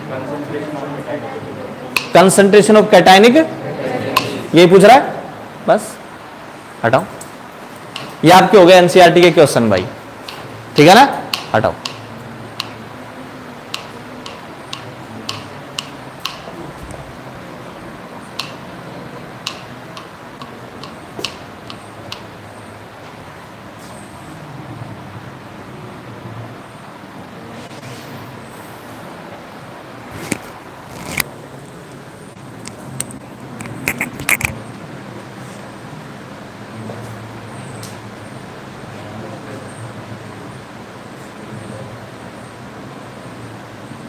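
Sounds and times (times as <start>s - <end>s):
low background hum: 0.0s - 44.0s.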